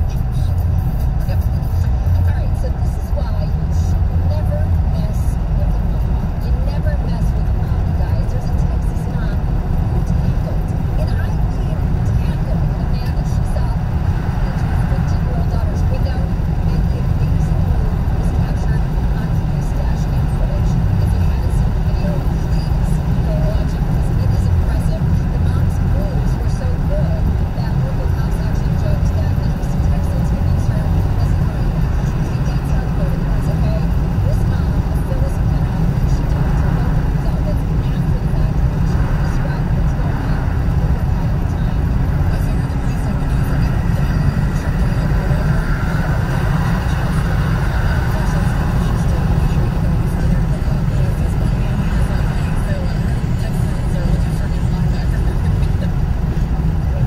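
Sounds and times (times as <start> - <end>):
road and tyre rumble in car: 0.0 - 57.0.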